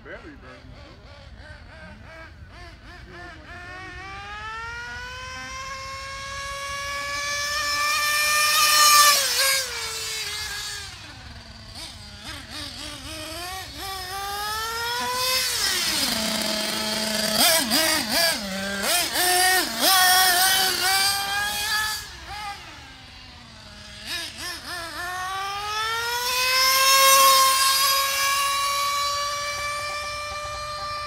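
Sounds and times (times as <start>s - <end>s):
rc car engine whining: 0.0s - 31.0s.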